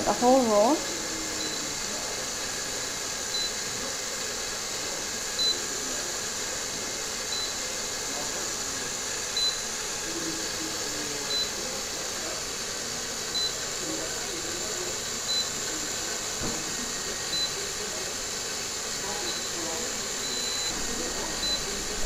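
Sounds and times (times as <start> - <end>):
cordless drill running: 0.0 - 22.0.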